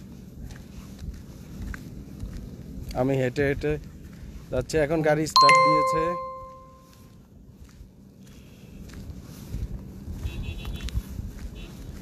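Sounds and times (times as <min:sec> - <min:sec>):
electronic chime: 0:05.4 - 0:06.9.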